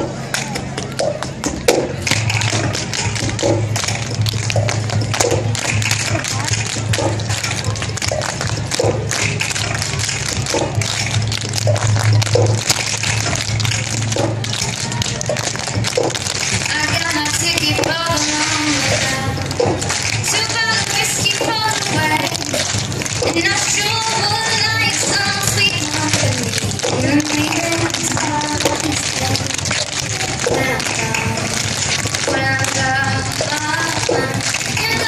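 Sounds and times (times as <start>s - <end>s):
loud dance music: 0.0s - 35.0s
shoes tapping on pavement: 0.0s - 35.0s.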